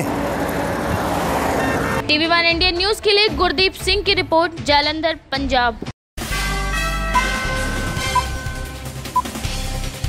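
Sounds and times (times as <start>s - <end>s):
highway traffic rushing: 0.0s - 2.3s.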